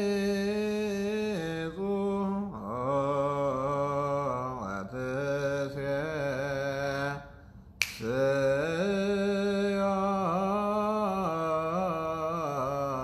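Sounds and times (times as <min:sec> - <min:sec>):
man chanting a prayer: 0:00.0 - 0:07.3, 0:08.0 - 0:13.0
sharp click: 0:07.8 - 0:08.1.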